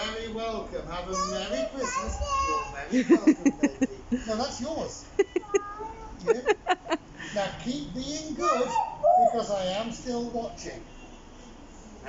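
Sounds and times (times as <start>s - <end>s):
child's squeaky voice: 1.1s - 2.9s, 5.4s - 6.2s, 8.4s - 9.4s.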